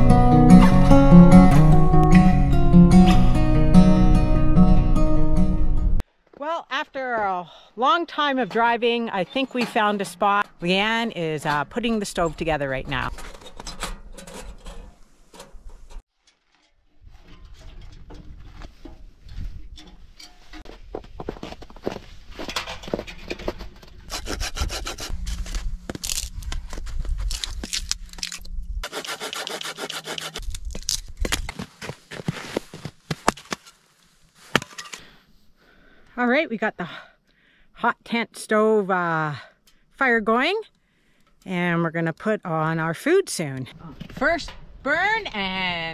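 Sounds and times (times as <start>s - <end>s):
hand saw cutting wood: 24.0s - 25.1s, 28.8s - 30.5s.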